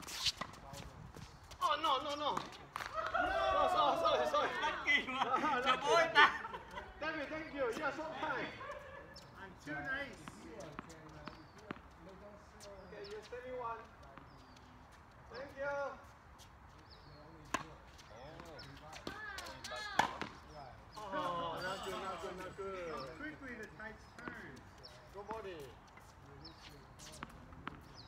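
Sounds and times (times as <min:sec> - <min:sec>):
players' voices: 0:00.1 - 0:28.0
tennis ball hit by racquets: 0:02.0 - 0:03.5, 0:17.4 - 0:20.5.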